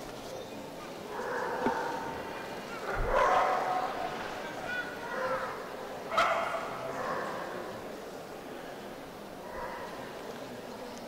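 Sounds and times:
background talk: 0.0 - 11.0
dog barking: 3.0 - 4.0, 6.1 - 6.8.

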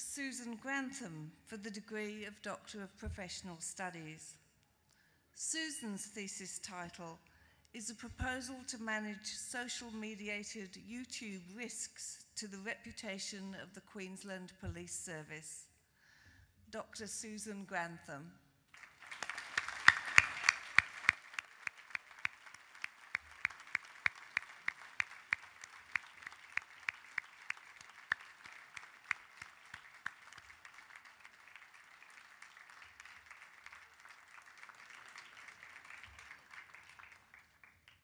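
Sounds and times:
sharp claps close to microphone: 18.7 - 38.0
audience applauding: 18.8 - 38.0.

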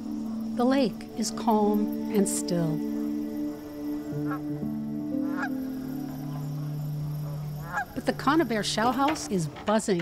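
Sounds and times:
music of held chords: 0.0 - 9.3
geese honking: 0.0 - 9.6.

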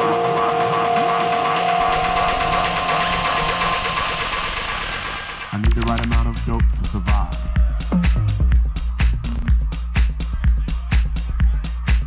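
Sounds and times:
off-beat hi-hats: 0.0 - 12.0
deep bass line: 5.5 - 12.0.

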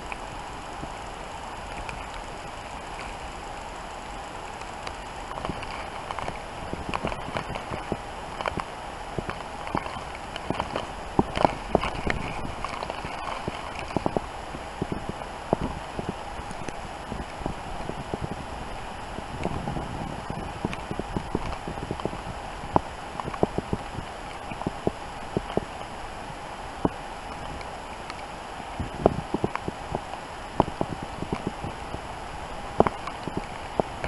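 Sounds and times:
steady hiss: 0.0 - 34.0.

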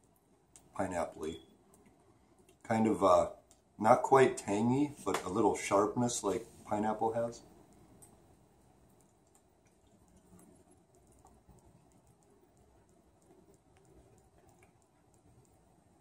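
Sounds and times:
faint clicks: 8.9 - 16.0.

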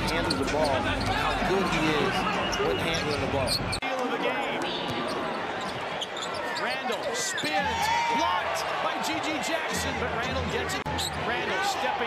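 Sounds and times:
sneakers squeaking: 0.0 - 3.8, 4.4 - 7.8, 10.9 - 11.3
arena crowd noise: 0.0 - 12.0.

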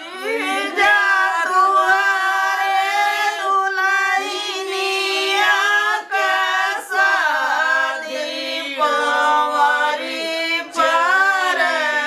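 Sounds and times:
women singing folk song: 0.0 - 12.0.

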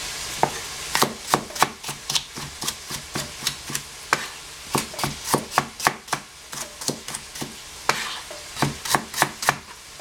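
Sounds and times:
cleaver chopping on cutting board: 0.4 - 9.8.

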